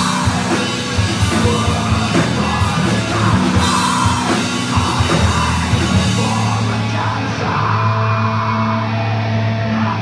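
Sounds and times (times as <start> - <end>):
band playing droning rock: 0.0 - 10.0.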